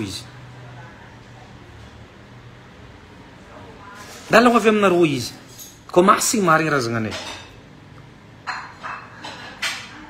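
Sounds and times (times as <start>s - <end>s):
man speaking: 4.3s - 7.2s.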